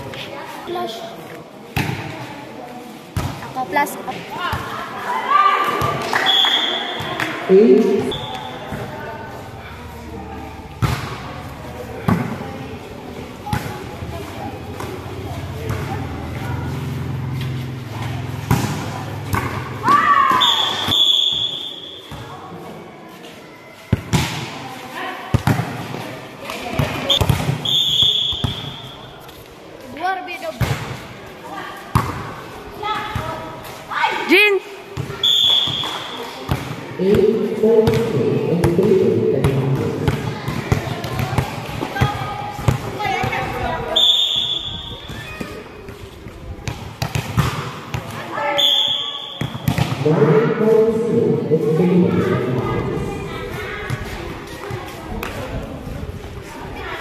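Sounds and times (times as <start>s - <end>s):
players calling out and shouting: 3.2s - 22.9s, 23.5s - 55.8s.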